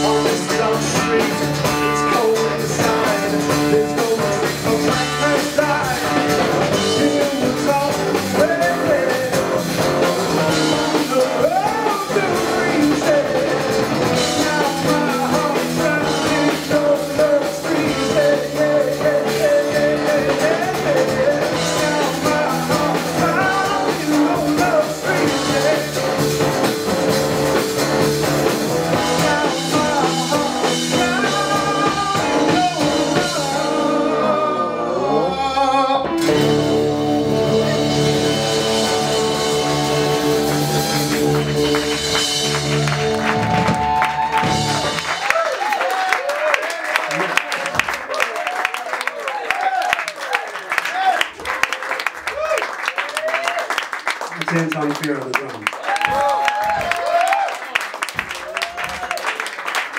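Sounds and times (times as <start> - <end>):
man singing lead: 0.0 - 26.7, 28.6 - 42.4
live rock band playing: 0.0 - 46.0
audience cheering and applause: 3.2 - 33.5, 38.0 - 59.9.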